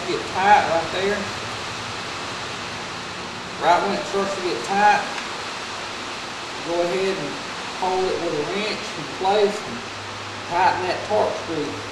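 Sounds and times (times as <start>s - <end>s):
steady background hiss: 0.0s - 11.9s.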